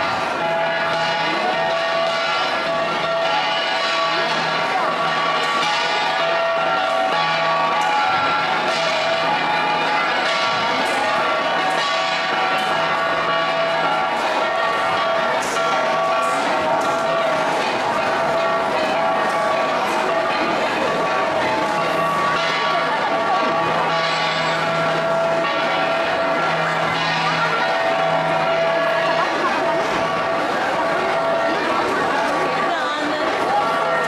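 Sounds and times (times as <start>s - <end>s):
bronze gongs ringing: 0.0s - 34.0s.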